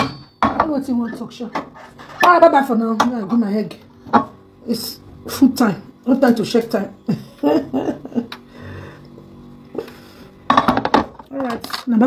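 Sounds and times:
woman laughing: 0:07.0 - 0:08.5.

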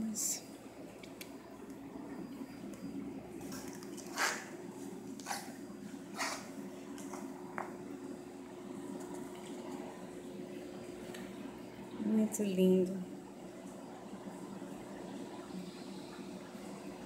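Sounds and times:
aquarium equipment humming: 0:00.0 - 0:17.0.

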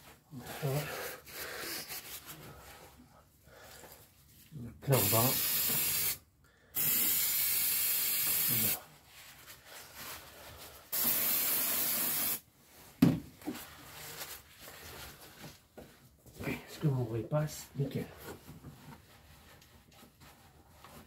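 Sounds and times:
aerosol can spraying: 0:05.0 - 0:06.2, 0:06.8 - 0:08.8, 0:10.9 - 0:12.4.

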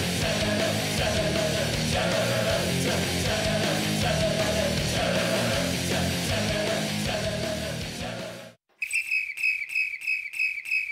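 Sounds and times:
guitar rock music: 0:00.0 - 0:08.6
short high whistle notes: 0:08.8 - 0:10.9.

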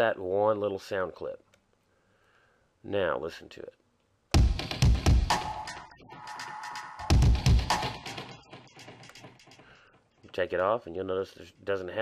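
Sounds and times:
dubstep beat: 0:04.3 - 0:09.8
heavy bass drum hits: 0:04.4 - 0:05.4.

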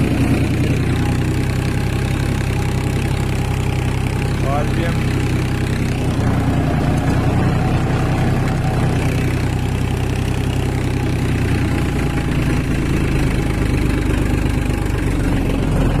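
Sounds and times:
rotavator blades churning soil: 0:00.0 - 0:16.0
tractor diesel engine running: 0:00.0 - 0:16.0.

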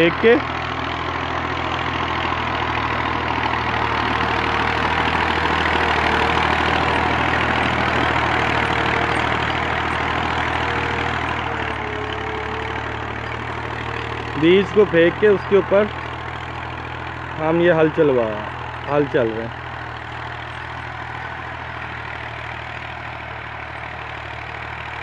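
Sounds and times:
tractor diesel engine under load: 0:00.0 - 0:25.0.

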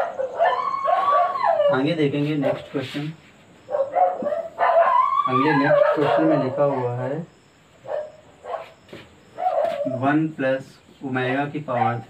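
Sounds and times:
high-pitched animal whine: 0:00.2 - 0:02.0, 0:04.8 - 0:07.2.

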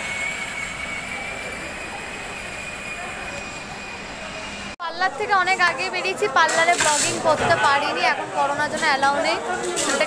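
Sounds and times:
high-pitched whine: 0:00.0 - 0:04.8
mechanical hum and hiss: 0:00.0 - 0:10.0.

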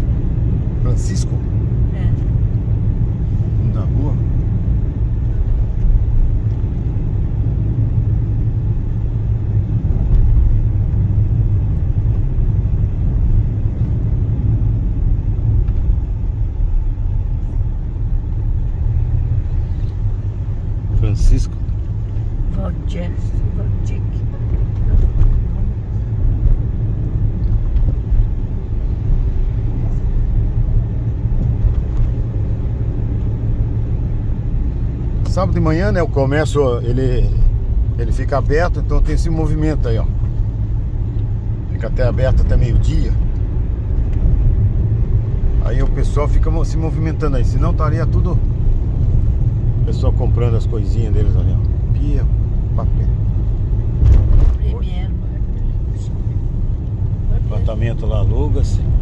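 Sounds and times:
engine and tyre rumble: 0:00.0 - 0:59.0.

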